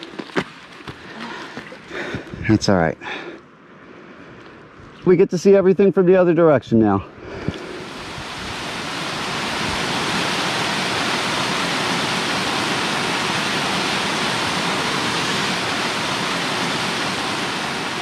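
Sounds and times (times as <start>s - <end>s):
water rushing down waterfall: 7.6s - 18.0s.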